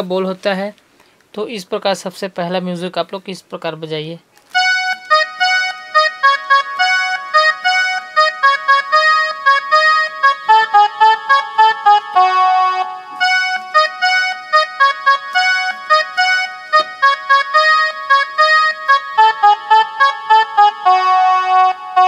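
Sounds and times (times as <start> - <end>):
mini keyboard single-note melody: 4.5 - 22.0.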